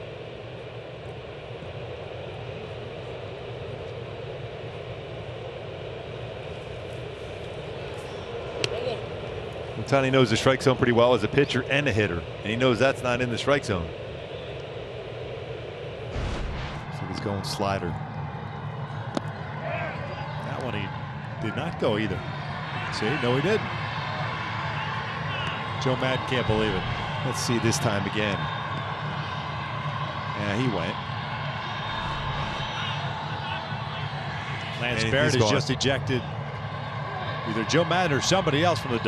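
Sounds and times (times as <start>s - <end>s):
ballpark background noise: 0.0s - 39.0s
low stadium hum: 0.0s - 39.0s.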